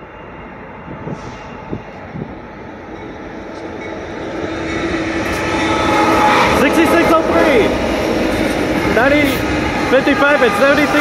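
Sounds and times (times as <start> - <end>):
diesel locomotive engine drone: 0.0 - 11.0
rail rumble: 0.0 - 11.0.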